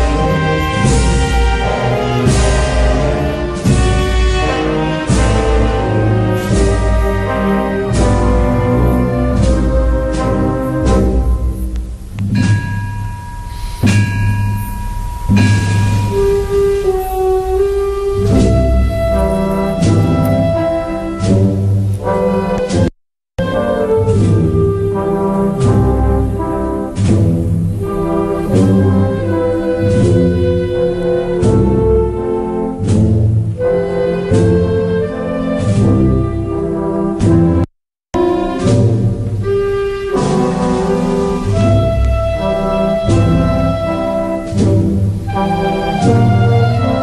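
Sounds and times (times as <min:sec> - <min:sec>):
band playing slow march: 0:00.0 - 0:47.0
heavy drum and bell strikes: 0:09.4 - 0:20.2.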